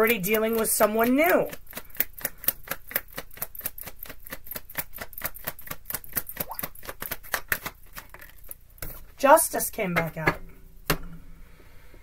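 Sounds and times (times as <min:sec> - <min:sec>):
cards being shuffled: 0:01.5 - 0:09.1.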